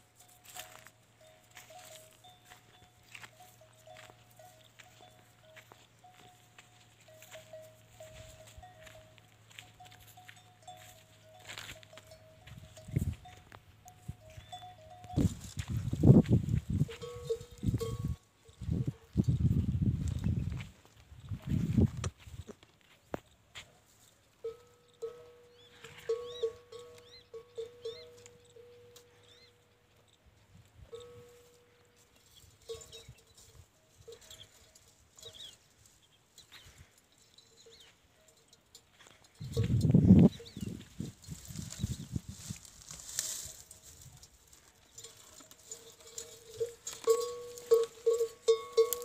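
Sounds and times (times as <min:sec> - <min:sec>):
faint thin ringing tone: 0:00.1 - 0:16.0, 0:30.8 - 0:49.0.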